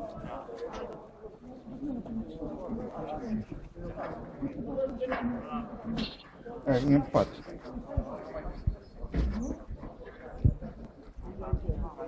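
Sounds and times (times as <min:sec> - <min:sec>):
people talking indistinctly: 0:00.0 - 0:12.0.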